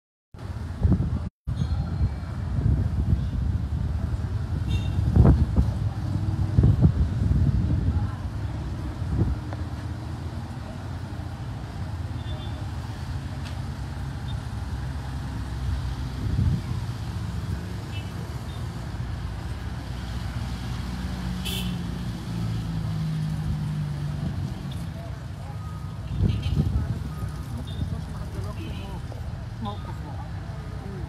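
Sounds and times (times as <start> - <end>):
vehicle engines humming: 0.4 - 31.0.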